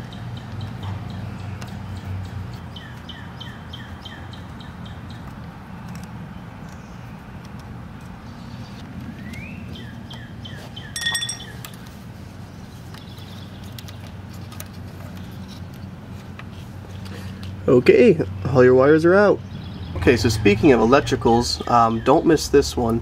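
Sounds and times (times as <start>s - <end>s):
small songbird chirping: 0.0s - 5.3s, 8.4s - 11.8s, 12.5s - 14.1s, 19.4s - 20.0s
sharp clink: 11.0s - 11.7s.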